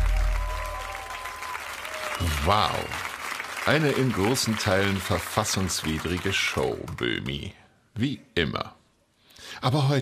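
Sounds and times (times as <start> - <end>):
studio audience applauding: 0.0 - 7.2.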